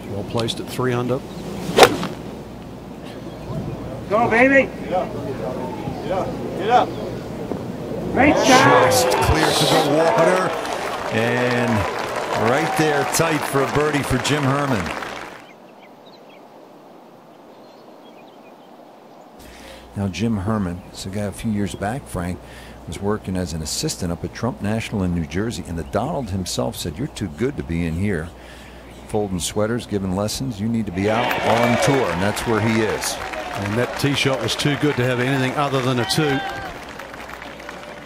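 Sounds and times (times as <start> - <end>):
steady low hiss: 0.0 - 38.0
golf club striking ball: 1.8 - 2.3.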